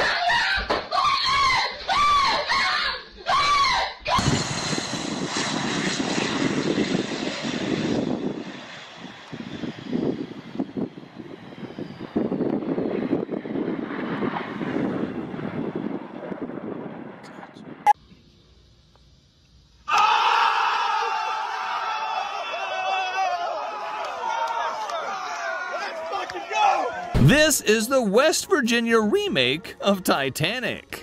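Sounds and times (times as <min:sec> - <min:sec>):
propeller aircraft engines: 0:04.6 - 0:19.7.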